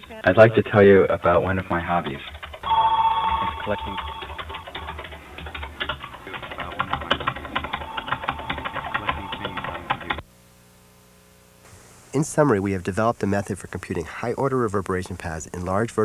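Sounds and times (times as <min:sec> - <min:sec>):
rapid clicking: 0:02.0 - 0:02.7, 0:03.7 - 0:10.2
electronic ringing tone: 0:02.6 - 0:10.2.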